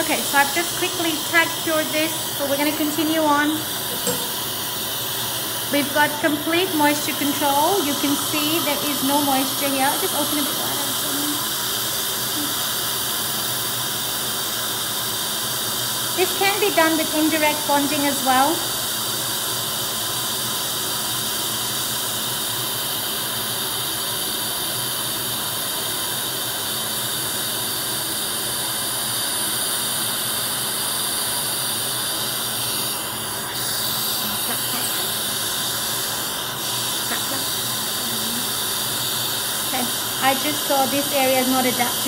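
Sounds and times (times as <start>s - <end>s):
dental suction hiss: 0.0s - 42.0s.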